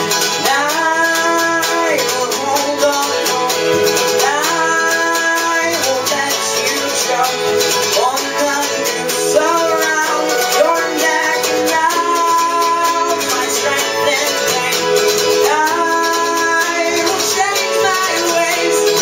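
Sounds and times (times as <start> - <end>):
keyboard: 0.0 - 19.0
person singing: 0.0 - 19.0
plucked string instrument: 0.0 - 19.0
strummed acoustic guitar: 0.0 - 19.0.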